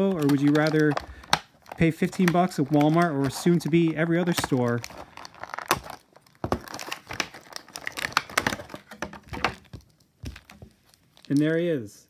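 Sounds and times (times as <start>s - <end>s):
plastic packaging crinkling: 0.0s - 11.8s.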